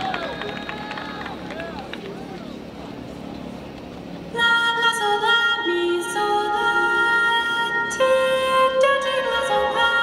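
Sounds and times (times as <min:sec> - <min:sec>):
stadium crowd background: 0:00.0 - 0:04.4.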